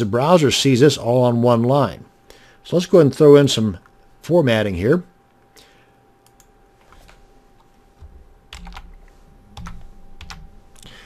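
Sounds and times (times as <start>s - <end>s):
keyboard keystrokes: 8.0s - 9.0s.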